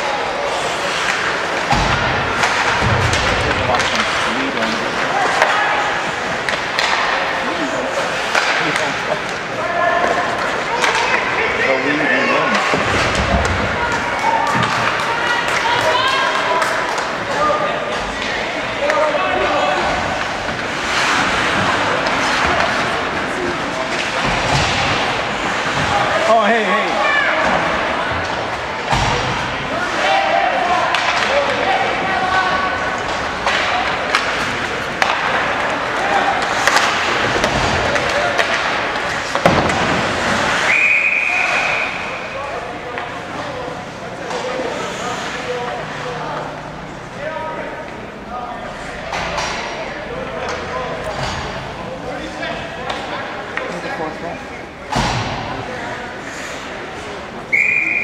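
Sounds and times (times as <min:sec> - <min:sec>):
people talking: 0:00.0 - 0:58.0
pucks and sticks knocking: 0:01.0 - 0:11.3, 0:33.0 - 0:40.6
referee's whistle: 0:40.6 - 0:42.0, 0:57.5 - 0:58.0.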